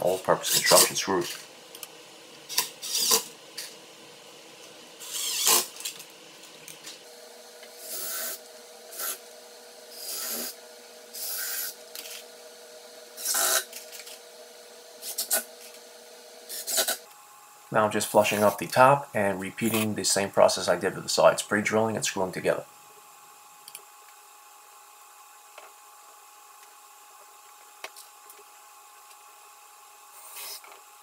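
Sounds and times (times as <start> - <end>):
cordless drill driving screws: 5.0 - 5.7.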